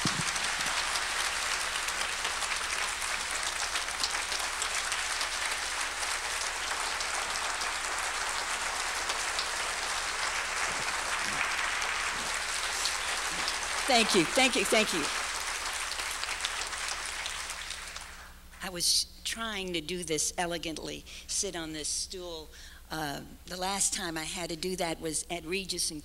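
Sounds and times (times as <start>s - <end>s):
audience applauding: 0.0s - 18.3s.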